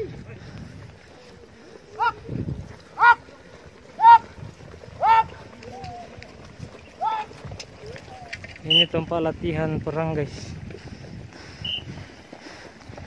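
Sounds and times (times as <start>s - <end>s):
rumble of crowd running: 0.0s - 13.0s
high shouted war cries: 1.9s - 2.3s, 2.9s - 6.2s, 6.9s - 8.4s.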